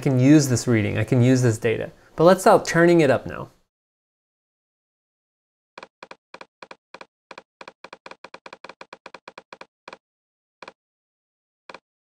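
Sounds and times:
rapid computer clicks: 5.8 - 10.0.

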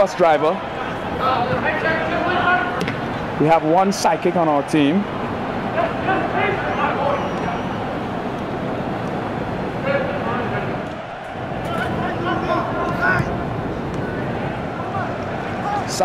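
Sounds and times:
steady background noise: 0.0 - 16.0.

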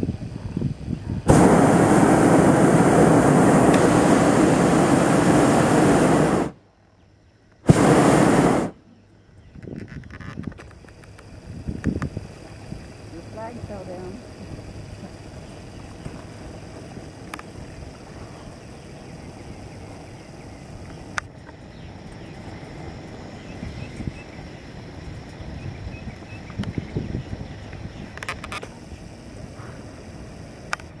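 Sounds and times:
steady low rumble: 0.0 - 6.7.

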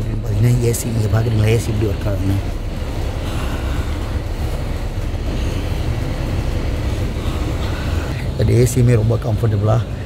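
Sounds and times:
air rushing from vent: 0.0 - 10.0
bus engine rumble: 0.0 - 10.0.

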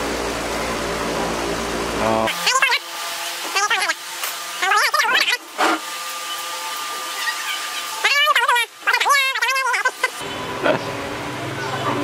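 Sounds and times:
voice with wavering pitch: 2.0 - 2.8, 3.5 - 4.0, 4.6 - 5.4, 6.9 - 10.2.

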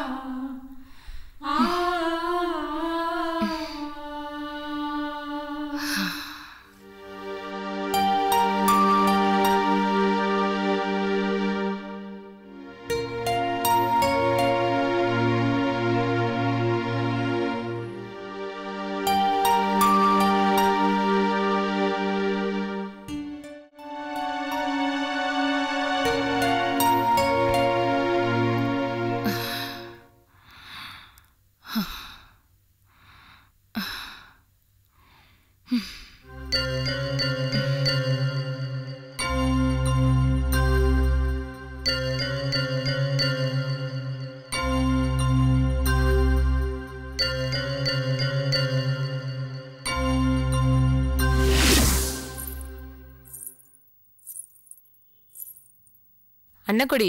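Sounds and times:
woman breathing heavily: 0.8 - 1.7, 5.8 - 6.8, 29.2 - 36.3
background music: 6.8 - 30.3, 36.3 - 53.6
jewellery jingling: 52.2 - 56.0
woman's voice: 56.6 - 57.0.

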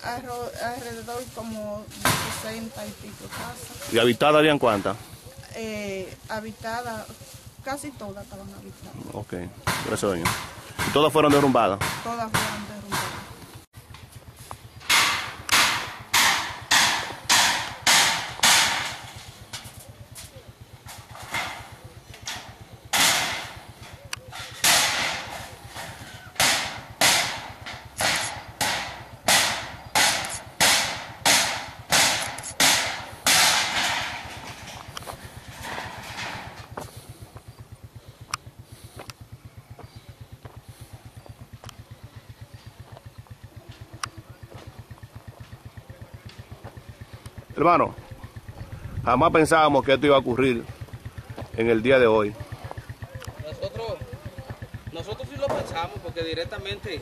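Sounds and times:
low rapid pulsing: 0.0 - 57.0
loud sharp ringing knocks: 9.6 - 13.4, 14.8 - 19.7, 20.9 - 36.9, 54.5 - 57.0.

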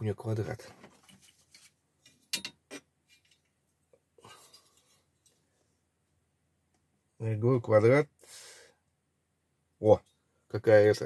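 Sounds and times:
paper rustling: 0.7 - 1.8.

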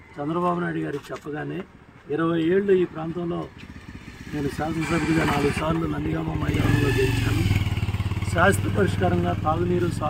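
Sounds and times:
vehicle engine humming: 2.5 - 10.0
man speaking: 8.3 - 10.0.

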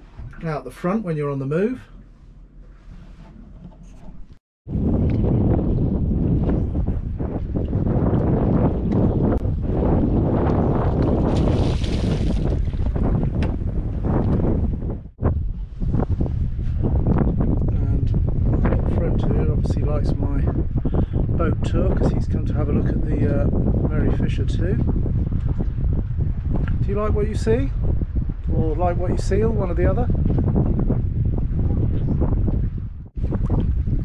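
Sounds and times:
wind buffeting microphone: 1.6 - 34.0.

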